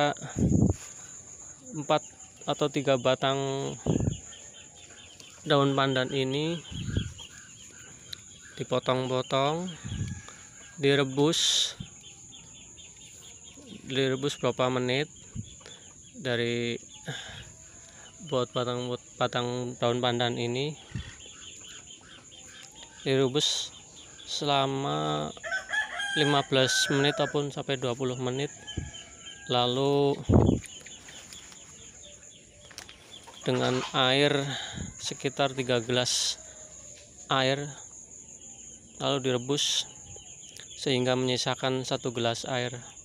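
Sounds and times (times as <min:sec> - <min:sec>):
faint bird calls chirping: 0:00.0 - 0:43.0
faint chicken chirps: 0:09.6 - 0:10.8, 0:25.2 - 0:27.4.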